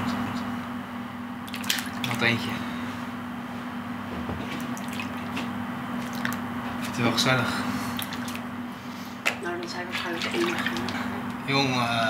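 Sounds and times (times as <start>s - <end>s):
steady low hum: 0.0s - 12.0s
water dripping and splashing: 1.5s - 2.3s, 4.5s - 7.0s, 7.9s - 8.5s, 10.0s - 11.1s.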